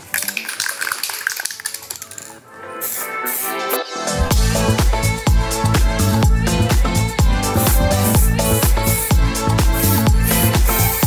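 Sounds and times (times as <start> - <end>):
aerosol can ball rattling: 0.0 - 3.6
background music: 0.0 - 11.0.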